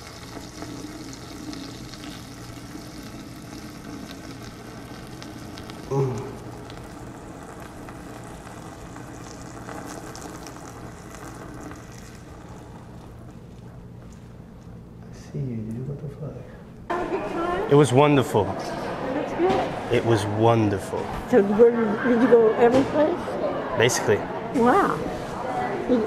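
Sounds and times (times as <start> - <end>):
man saying ooh: 5.9 - 6.4.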